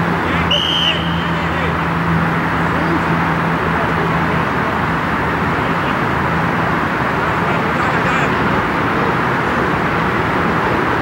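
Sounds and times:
outdoor background noise: 0:00.0 - 0:11.0
referee's whistle blast: 0:00.4 - 0:01.4.

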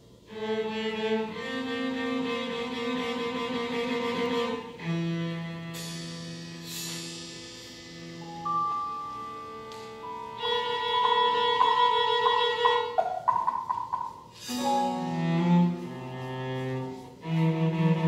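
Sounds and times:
violin and cello sustained notes: 0:00.2 - 0:18.0
sharp struck accents: 0:06.7 - 0:15.5.

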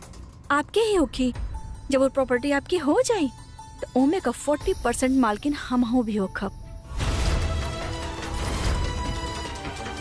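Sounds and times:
drama score music: 0:04.6 - 0:10.0.

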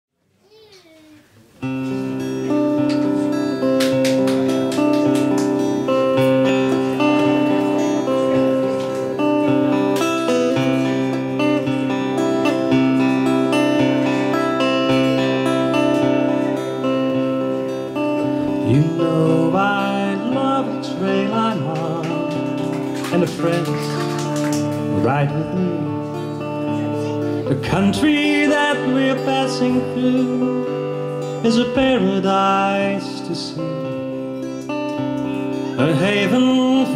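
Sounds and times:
acoustic guitar playing: 0:01.4 - 0:36.9
person singing: 0:18.2 - 0:24.2, 0:24.8 - 0:36.9.

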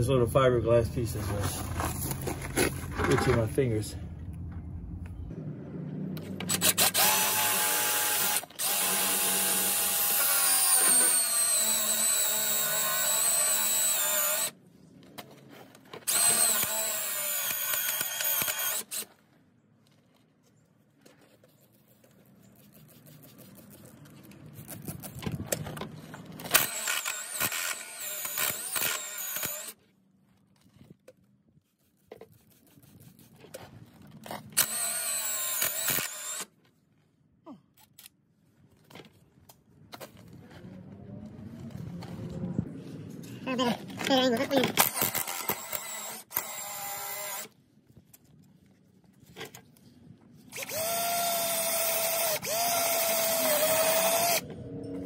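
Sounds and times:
impact driver boring through fiberglass: 0:06.5 - 0:14.5, 0:16.1 - 0:19.1, 0:26.4 - 0:29.8.

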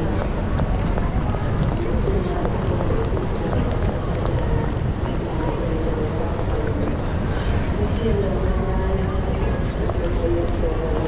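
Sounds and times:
low rumble of city noise: 0:00.0 - 0:11.0
voices chattering: 0:00.0 - 0:11.0.

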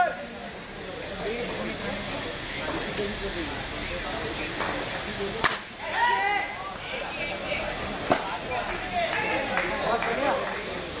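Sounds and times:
cricket bat striking ball: 0:05.4 - 0:05.7.

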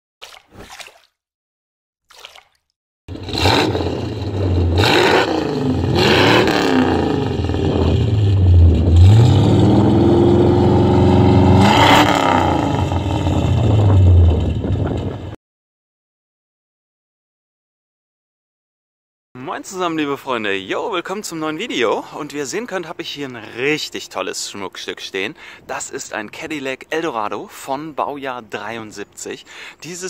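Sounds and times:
car engine revving: 0:03.1 - 0:15.4.

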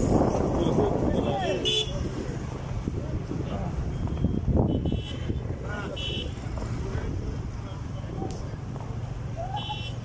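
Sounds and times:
people's voices: 0:00.0 - 0:10.0
traffic engines rumbling: 0:00.0 - 0:10.0.

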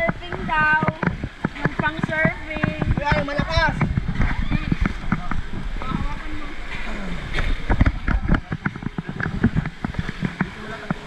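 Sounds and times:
people's voices: 0:00.0 - 0:11.0
water splashing and slapping: 0:00.0 - 0:11.0.

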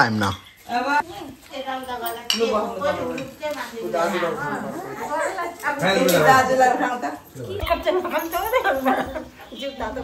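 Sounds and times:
tableware clinking: 0:00.0 - 0:01.0, 0:01.8 - 0:03.4.

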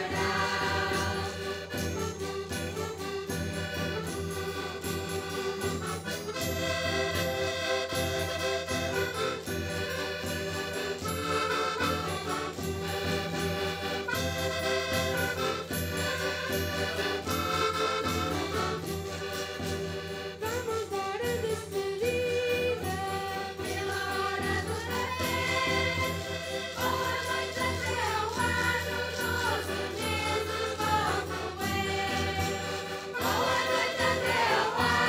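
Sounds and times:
accordions playing held chords: 0:00.0 - 0:35.0
folk band playing: 0:00.0 - 0:35.0.

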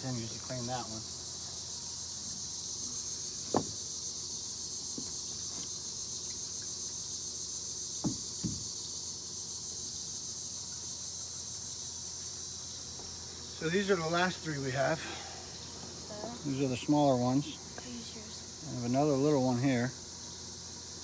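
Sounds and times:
high-pitched insect chorus: 0:00.0 - 0:21.0.

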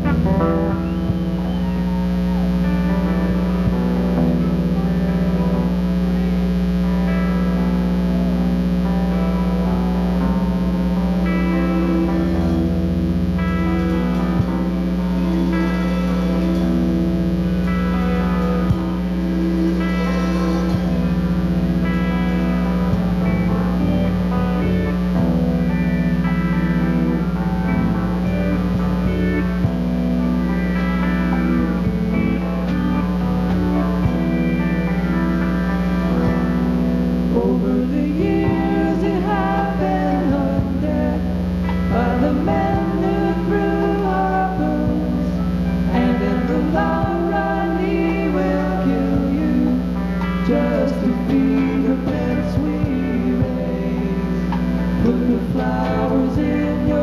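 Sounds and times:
live band with electric guitar: 0:00.0 - 0:57.0
pedal steel guitar: 0:00.0 - 0:57.0
steady low hum: 0:00.0 - 0:57.0.

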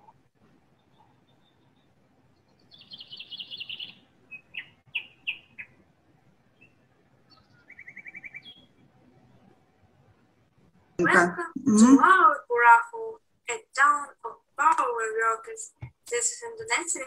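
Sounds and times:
small birds singing: 0:00.6 - 0:05.8, 0:06.5 - 0:09.6.

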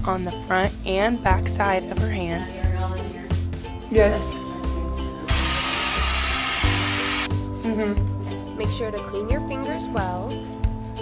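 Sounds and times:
background music: 0:00.0 - 0:11.0
steady rushing hiss: 0:05.3 - 0:07.3.

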